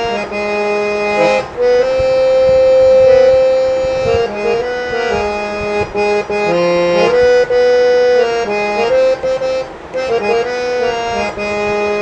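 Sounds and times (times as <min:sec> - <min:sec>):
harmonium holding long note: 0:00.0 - 0:12.0.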